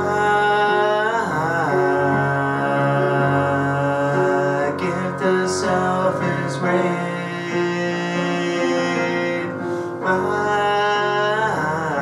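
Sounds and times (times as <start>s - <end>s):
man singing long held note: 0.0s - 12.0s
sustained piano chords: 0.0s - 12.0s.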